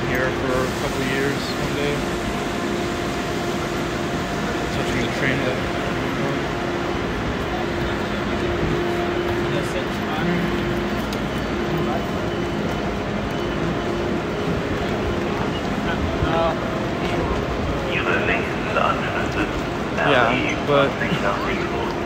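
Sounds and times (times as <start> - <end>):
station noise: 0.0 - 22.0
train machine hum: 0.0 - 22.0.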